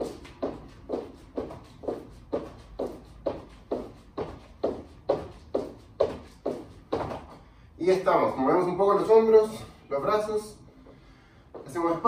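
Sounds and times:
feet landing on wooden floor: 0:00.0 - 0:07.4.

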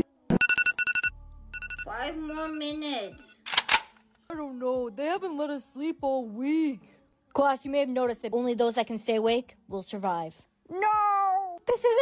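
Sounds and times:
alarm clock rapid beeps: 0:00.4 - 0:03.3.

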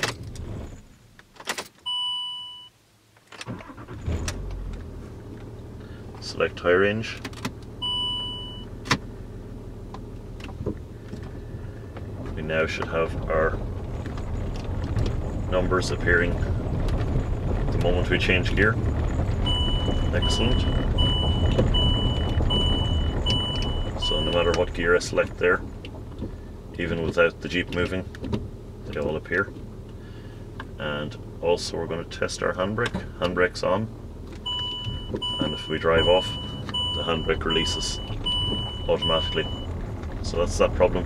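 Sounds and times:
high dashboard warning beep: 0:01.9 - 0:02.8, 0:07.8 - 0:08.7, 0:19.4 - 0:24.7, 0:34.4 - 0:39.8
car engine idling: 0:03.5 - 0:41.0
dashboard chime: 0:34.5 - 0:39.7.

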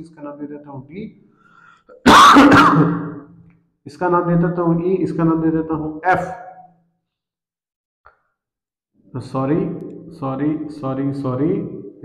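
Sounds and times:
man clearing his throat: 0:01.9 - 0:03.3.

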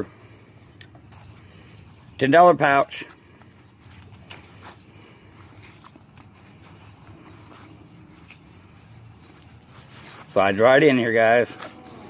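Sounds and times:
faint rustling of nylon pouch: 0:02.9 - 0:11.5.

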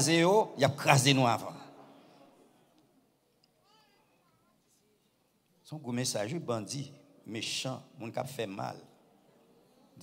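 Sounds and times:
amplified preacher voice: 0:00.0 - 0:01.8, 0:05.6 - 0:08.9.

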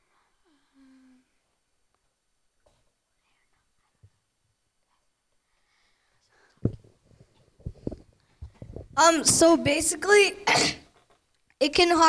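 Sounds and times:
faint whispering: 0:00.0 - 0:01.5, 0:03.0 - 0:06.6.

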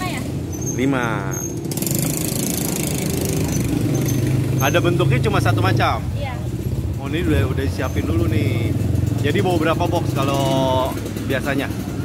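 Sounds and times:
small engine idling: 0:01.7 - 0:12.0.

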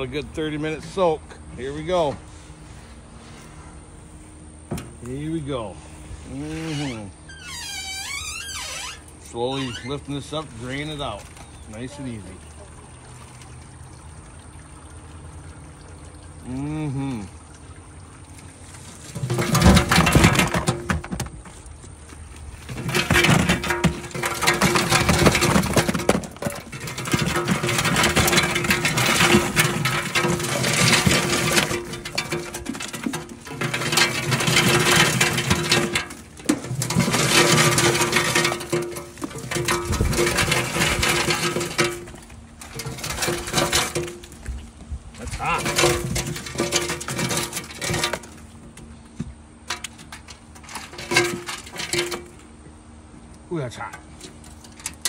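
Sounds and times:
food tumbling into plastic tub: 0:18.8 - 0:48.7.

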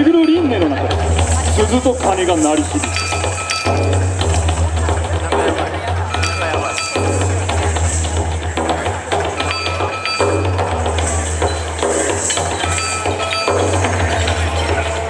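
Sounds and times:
dance music with heavy bass: 0:00.5 - 0:15.0.

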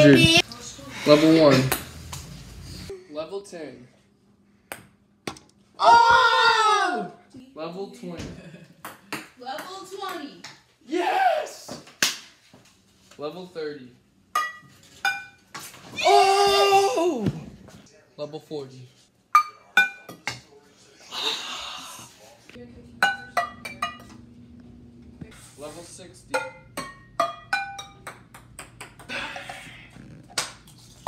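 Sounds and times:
ping pong ball hitting pots: 0:08.8 - 0:10.6, 0:14.3 - 0:15.4, 0:23.0 - 0:24.2, 0:26.3 - 0:29.5.

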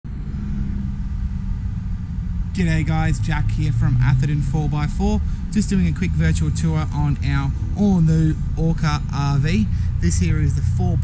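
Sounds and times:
constant low hum: 0:00.0 - 0:11.0
low mechanical rumble: 0:00.0 - 0:11.0.

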